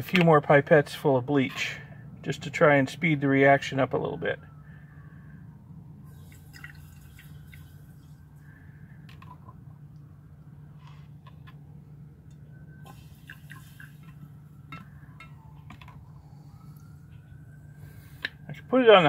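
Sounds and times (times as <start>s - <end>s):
steady low hum: 0.0s - 19.0s
liquid dripping: 6.1s - 8.2s, 12.8s - 14.4s.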